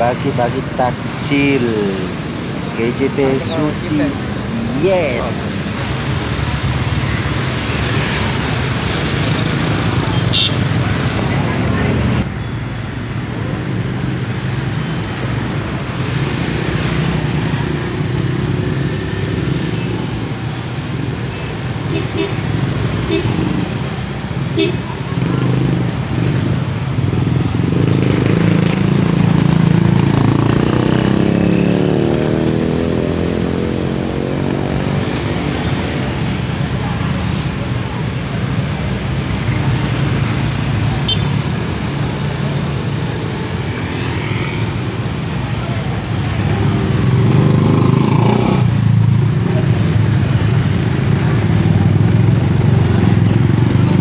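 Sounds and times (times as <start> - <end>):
people chattering: 0.0 - 6.0, 34.9 - 48.6, 49.2 - 54.0
motorcycles and scooters passing: 0.0 - 12.3, 13.0 - 54.0.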